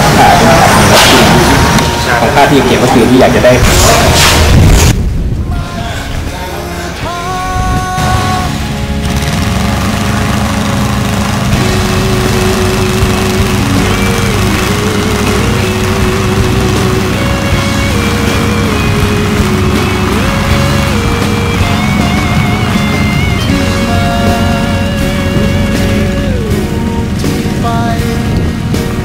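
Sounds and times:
music: 0.0s - 29.0s
small piston engine running: 8.8s - 26.0s.

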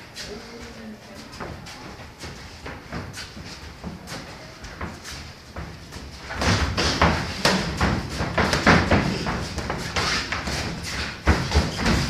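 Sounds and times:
boxing gloves thudding: 5.5s - 12.0s.

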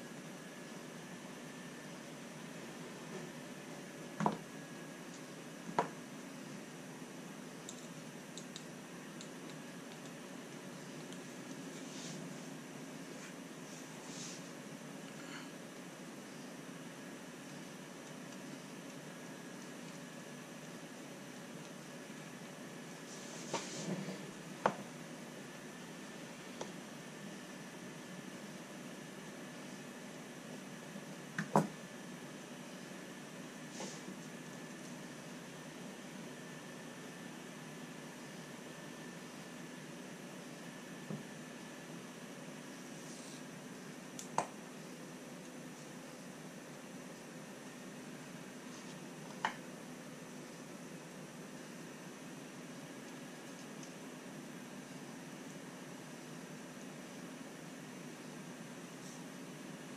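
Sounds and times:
steady background hum: 0.0s - 59.9s.

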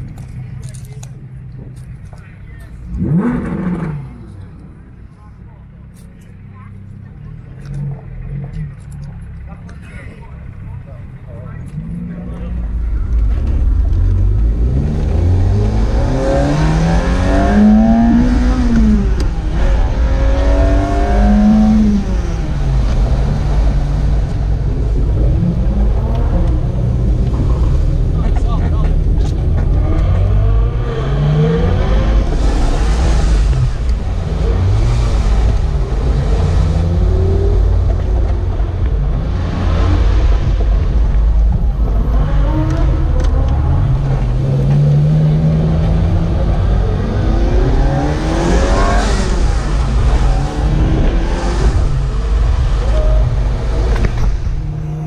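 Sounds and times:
car engine accelerating: 0.0s - 55.0s
car engine revving: 0.0s - 55.0s
low road rumble: 0.0s - 55.0s.

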